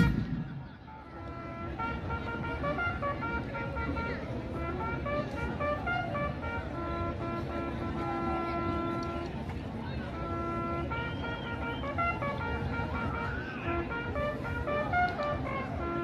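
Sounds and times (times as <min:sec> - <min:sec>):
murmur of voices: 0:00.0 - 0:16.0
faint horn-like tune: 0:00.9 - 0:16.0.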